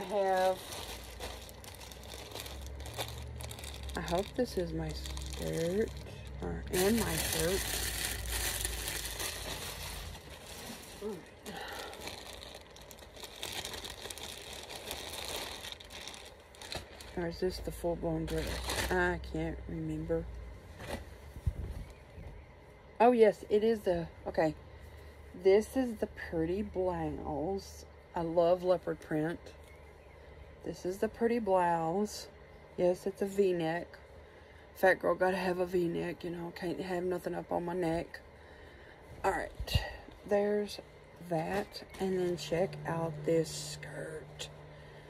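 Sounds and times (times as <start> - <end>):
fabric rustle: 0.0 - 17.2
plastic bag crinkling: 0.0 - 19.3.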